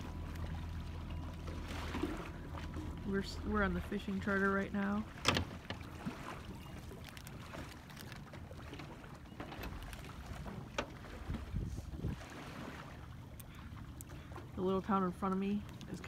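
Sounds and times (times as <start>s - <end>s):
low rumble: 0.0s - 6.0s
water lapping against boat hull: 0.0s - 16.0s.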